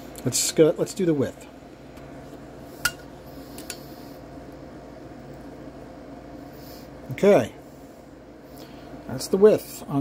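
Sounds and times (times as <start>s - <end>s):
low workshop hum: 0.0s - 10.0s.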